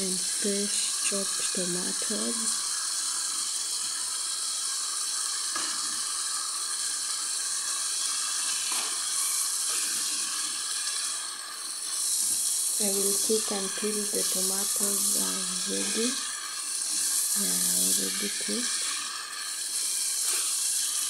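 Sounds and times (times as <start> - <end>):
food sizzling in a frying pan: 0.0 - 21.0.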